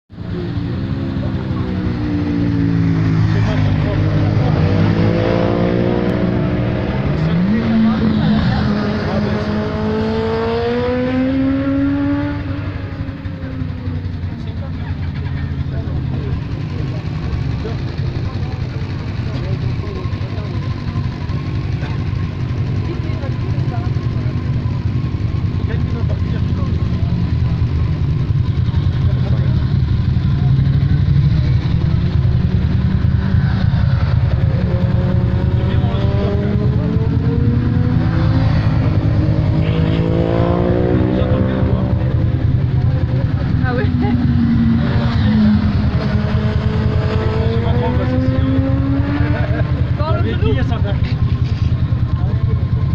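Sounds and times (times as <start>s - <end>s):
low engine drone: 0.1s - 52.9s
motorbike passing by: 0.2s - 52.4s.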